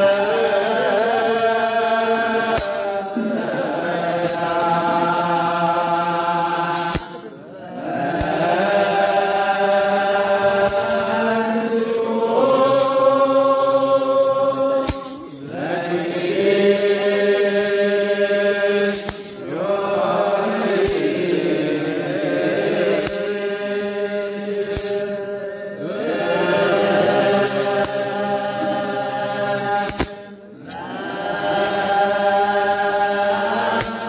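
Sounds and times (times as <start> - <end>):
men chanting in unison: 0.0 - 34.0
metal sistra jingling: 2.3 - 7.4, 8.2 - 13.8, 14.4 - 21.6, 22.5 - 32.8.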